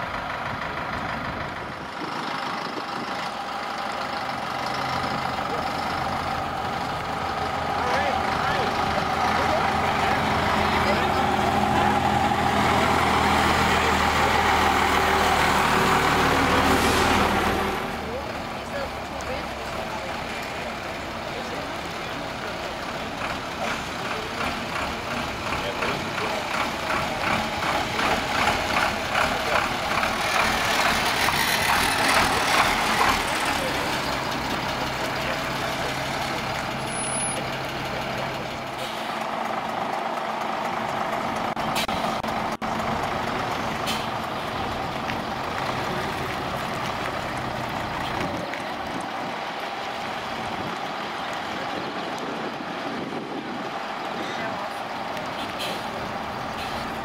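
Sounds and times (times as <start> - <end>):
truck engine driving past: 0.0 - 57.0.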